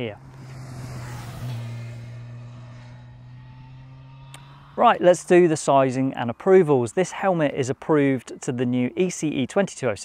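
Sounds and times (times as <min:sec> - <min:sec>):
motorcycle passing by: 0:00.0 - 0:05.7.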